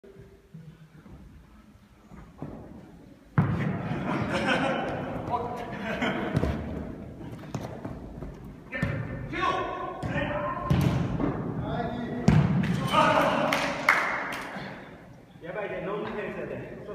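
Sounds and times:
players shouting: 0:12.7 - 0:13.8.

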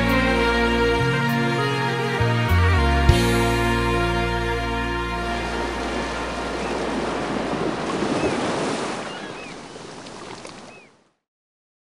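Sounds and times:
slow rock chord: 0:00.0 - 0:06.3
ocean surf washing: 0:04.0 - 0:10.9.

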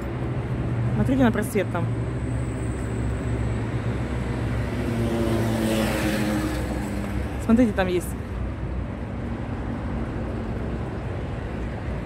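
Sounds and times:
traffic engine hum: 0:00.0 - 0:12.0
vehicle passing: 0:00.0 - 0:12.0.

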